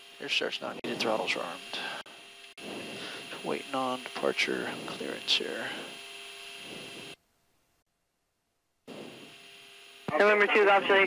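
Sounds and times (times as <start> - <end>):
jet cockpit hum: 0.0 - 7.8, 8.9 - 11.0.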